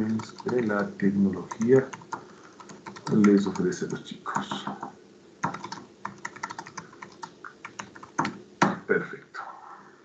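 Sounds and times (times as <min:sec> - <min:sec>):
typing on computer keyboard: 0:00.0 - 0:08.4.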